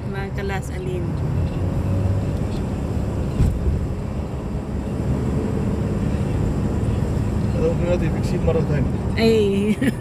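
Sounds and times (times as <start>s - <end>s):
car cabin road rumble: 0.0s - 10.0s.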